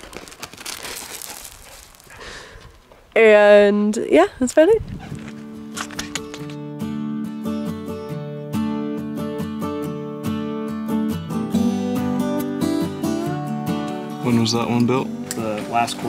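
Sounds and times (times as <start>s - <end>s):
strummed acoustic guitar: 5.4s - 16.0s.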